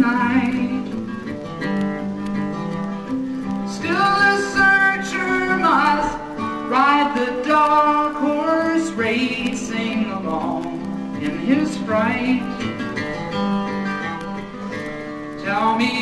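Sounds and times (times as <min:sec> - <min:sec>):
man singing: 0:00.0 - 0:01.0, 0:03.7 - 0:12.7, 0:15.4 - 0:16.0
acoustic guitar strumming: 0:00.0 - 0:16.0.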